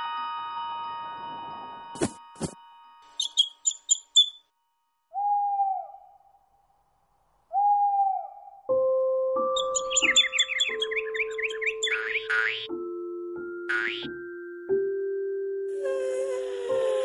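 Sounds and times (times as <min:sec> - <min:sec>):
small bird chirps: 0:03.1 - 0:04.5, 0:09.5 - 0:12.7
cartoon owl hooting: 0:05.1 - 0:06.5, 0:07.5 - 0:08.7, 0:09.6 - 0:12.7.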